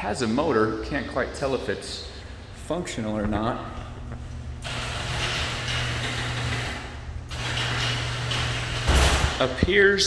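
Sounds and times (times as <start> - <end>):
garage door opener running: 4.4 - 9.6.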